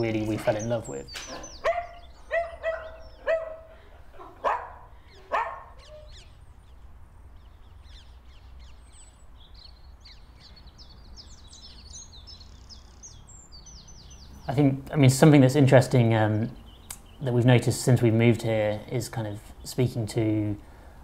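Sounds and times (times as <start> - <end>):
small birds chirping: 0.0 - 21.0
dog barking sharply: 1.6 - 3.8, 4.4 - 6.0.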